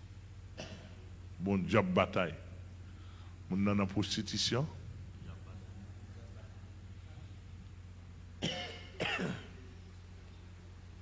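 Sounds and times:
man clearing his throat: 0.6 - 1.1, 8.4 - 9.7.

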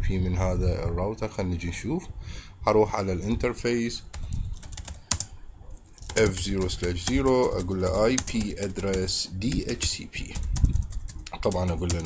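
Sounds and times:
keyboard typing clicks: 4.1 - 12.0.

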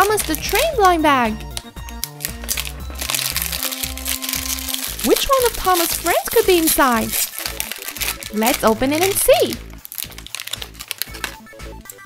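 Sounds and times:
plastic wrapper crinkling: 0.0 - 12.0
soft background music: 0.0 - 12.0.

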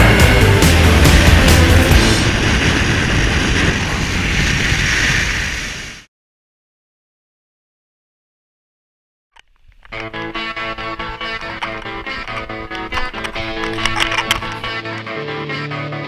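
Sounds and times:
motorcycle engine and wind roar: 0.0 - 6.1, 9.7 - 14.8.

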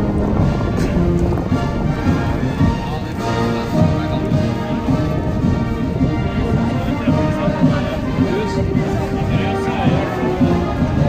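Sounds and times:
military band playing: 0.0 - 11.0
steady low clatter: 0.0 - 11.0.

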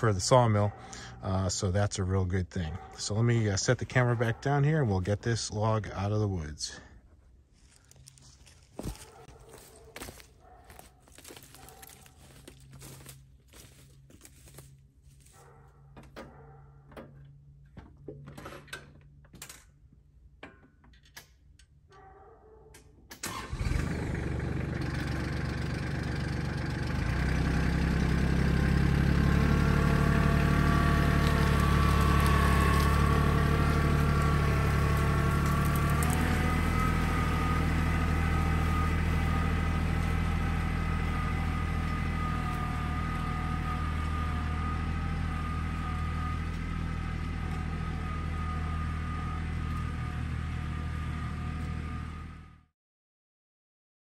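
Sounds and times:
tractor engine starting and running: 0.0 - 21.8, 23.0 - 52.7
log dragging: 7.5 - 15.6, 29.3 - 48.4.

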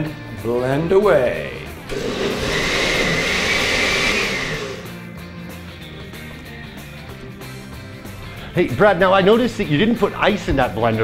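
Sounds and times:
blender motor whining: 1.9 - 5.0.

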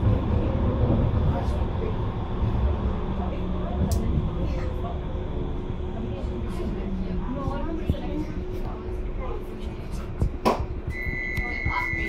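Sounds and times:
muffled passenger voices: 0.0 - 12.0
tram running rumble: 0.0 - 12.0.

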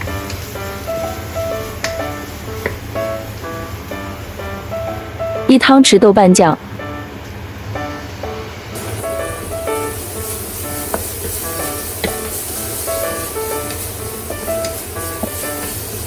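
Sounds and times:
food sizzling in oil: 0.0 - 5.5, 7.5 - 16.0
plucked background music: 0.0 - 16.0
wooden spatula knocking on pan: 1.8 - 2.9, 10.8 - 11.4, 13.7 - 15.7.

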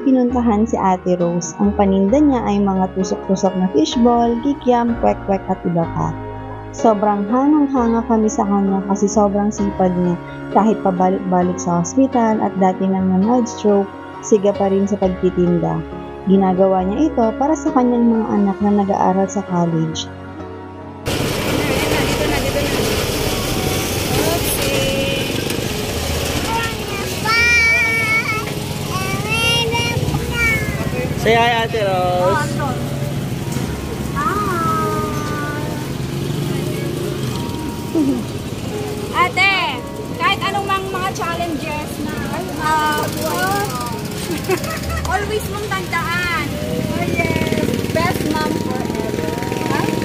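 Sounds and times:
street noise: 0.0 - 50.0
engine idling: 21.1 - 35.0
motorcycle engine running: 21.1 - 50.0
voices: 21.4 - 38.4, 39.0 - 50.0
people laughing: 44.1 - 45.3.

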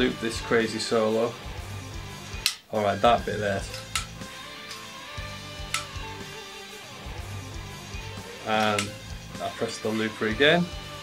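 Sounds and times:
sharp clicks: 2.4 - 2.7, 3.7 - 4.9, 5.7 - 6.0, 8.6 - 9.0.

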